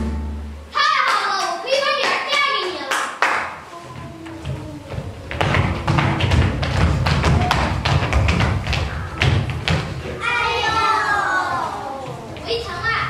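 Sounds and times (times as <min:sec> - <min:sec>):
child calling out: 0:03.7 - 0:05.2
rapid thumping and tapping: 0:04.4 - 0:10.0.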